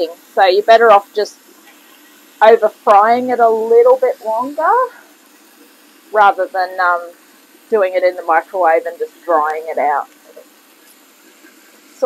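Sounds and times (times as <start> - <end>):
chicken frying in a pan: 0.0 - 12.0.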